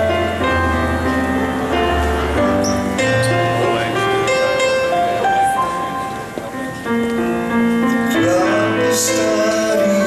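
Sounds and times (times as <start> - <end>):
slow piano chords: 0.0 - 10.0.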